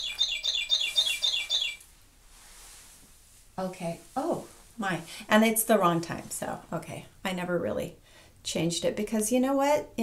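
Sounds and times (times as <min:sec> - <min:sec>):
clock bird-chirp chime: 0:00.0 - 0:01.8.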